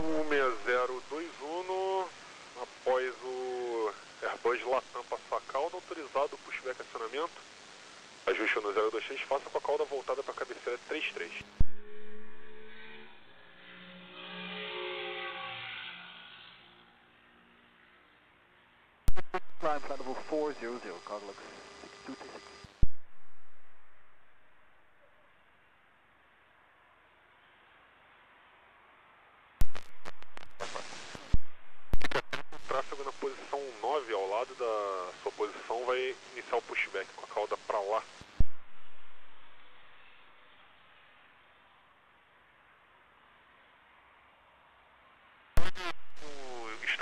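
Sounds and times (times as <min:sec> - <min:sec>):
voice talking over radio: 0:00.0 - 0:07.4, 0:08.2 - 0:11.6, 0:19.3 - 0:22.5, 0:30.4 - 0:31.1, 0:32.0 - 0:38.1, 0:45.7 - 0:47.0
radio clicks and static burst: 0:00.0 - 0:13.4, 0:19.1 - 0:24.5, 0:29.6 - 0:40.4, 0:45.6 - 0:47.0
radio hiss: 0:00.0 - 0:13.5, 0:19.1 - 0:25.3, 0:29.6 - 0:41.7, 0:45.6 - 0:47.0.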